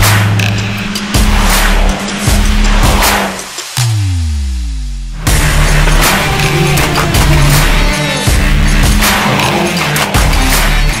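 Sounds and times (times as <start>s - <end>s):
car sounds: 0.0s - 4.1s, 5.2s - 11.0s
electronic soundtrack music: 0.0s - 11.0s.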